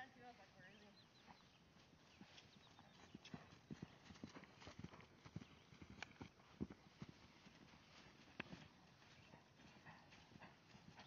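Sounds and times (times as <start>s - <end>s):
horse hoofbeats on grass: 0.1s - 11.0s.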